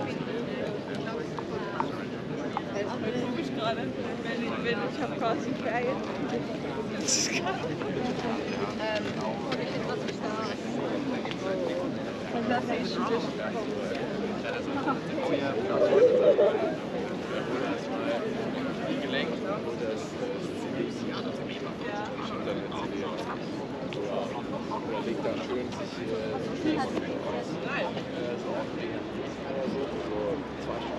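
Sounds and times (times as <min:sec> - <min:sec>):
chatter of people talking: 0:00.0 - 0:30.9.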